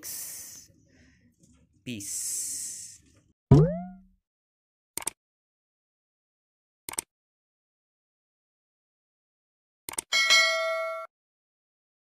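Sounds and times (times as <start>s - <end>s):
metallic bell ding: 10.2s - 11.1s.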